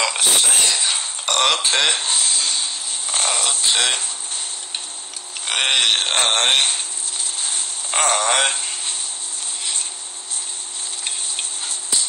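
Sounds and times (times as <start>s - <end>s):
faint steady hum: 0.0s - 12.0s
steady background hiss: 0.0s - 12.0s.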